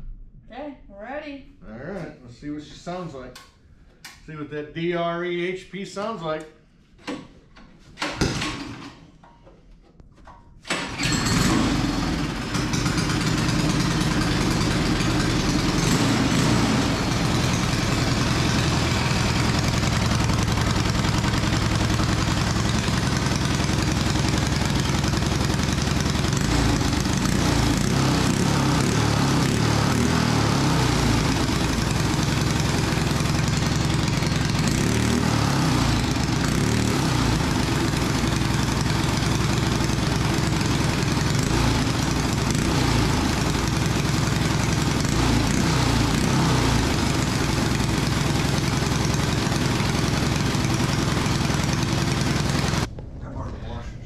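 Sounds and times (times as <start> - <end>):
small engine running: 10.7 - 52.9.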